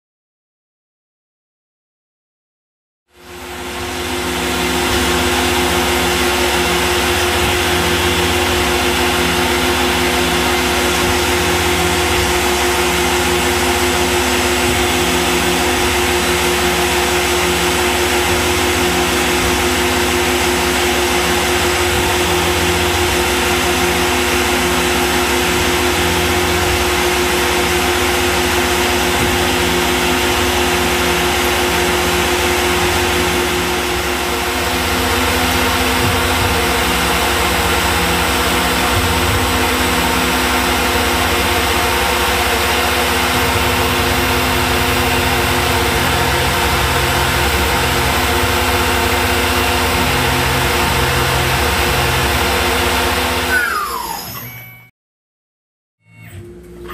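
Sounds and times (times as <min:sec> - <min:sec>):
milling machine spindle hum: 0:03.2 - 0:54.2.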